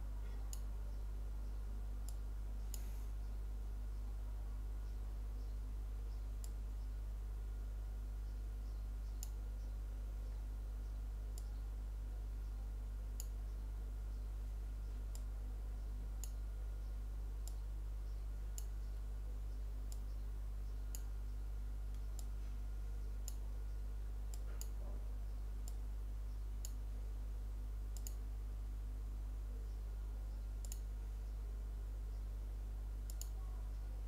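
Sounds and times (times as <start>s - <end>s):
low electrical hum: 0.0s - 34.0s
computer mouse clicking: 13.2s - 13.5s, 16.2s - 16.4s, 17.4s - 17.6s, 23.2s - 24.8s, 28.0s - 28.2s, 30.6s - 30.9s, 33.0s - 33.4s.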